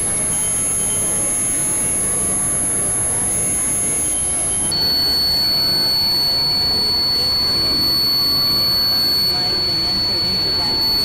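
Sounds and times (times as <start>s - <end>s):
high-pitched tones: 0.0s - 11.0s
lower steady whistle: 0.0s - 11.0s.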